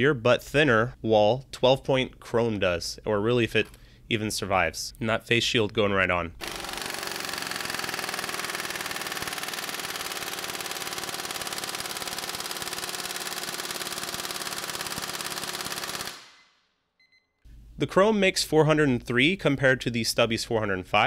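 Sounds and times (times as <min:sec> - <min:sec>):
impact wrench hammering: 0:06.4 - 0:16.3.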